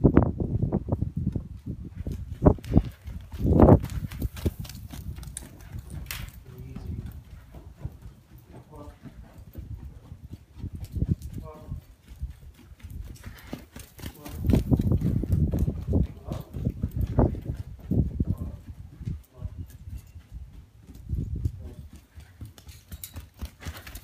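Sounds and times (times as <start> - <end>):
hooves thudding on sand: 1.0 - 24.0.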